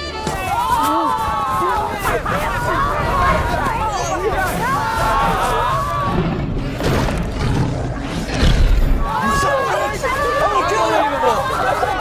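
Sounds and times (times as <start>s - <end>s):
people shouting: 0.0s - 6.5s, 8.8s - 12.0s
low rumbling: 1.2s - 10.6s.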